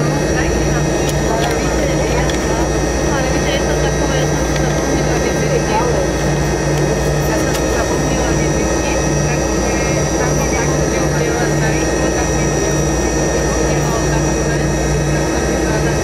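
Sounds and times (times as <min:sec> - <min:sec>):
jet engines whining: 0:00.0 - 0:16.0
pulsing low hum: 0:00.0 - 0:16.0.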